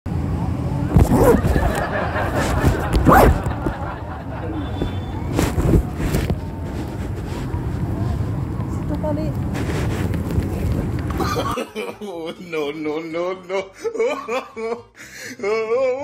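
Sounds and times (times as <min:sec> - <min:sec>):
outdoor background rumble: 0:00.1 - 0:11.6
distant people talking: 0:00.2 - 0:09.6.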